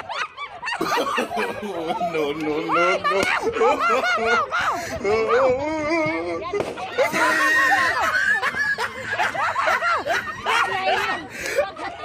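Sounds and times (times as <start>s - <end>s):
women laughing: 0.0s - 12.0s.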